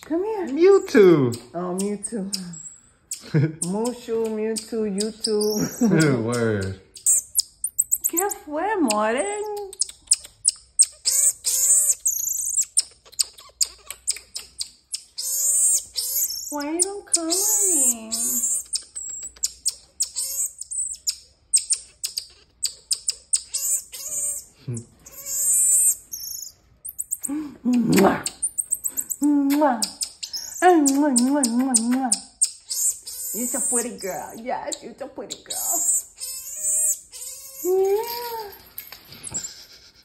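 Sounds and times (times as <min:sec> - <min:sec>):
marmoset chirping and trilling: 0:00.0 - 0:39.7.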